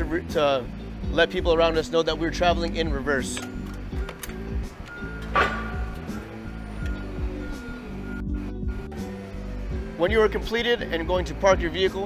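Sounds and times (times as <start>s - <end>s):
background music: 0.0s - 12.0s
forklift reverse alarm beeping: 3.6s - 9.6s.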